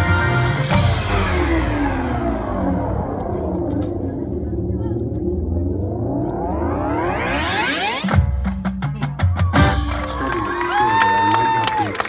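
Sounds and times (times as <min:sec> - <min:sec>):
marching band gliding chord: 0:00.0 - 0:04.8
steady low bass: 0:00.0 - 0:11.0.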